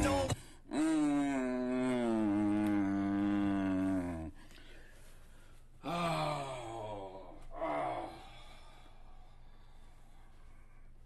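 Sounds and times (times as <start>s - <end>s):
man groaning: 0.7s - 4.3s, 5.8s - 8.3s.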